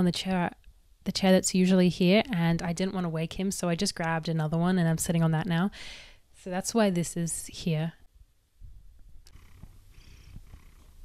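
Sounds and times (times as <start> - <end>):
cat purring: 9.2 - 11.0.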